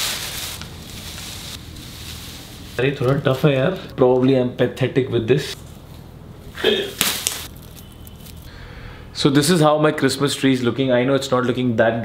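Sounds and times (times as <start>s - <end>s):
tinsel branches rustling: 0.0s - 3.8s, 7.0s - 8.6s.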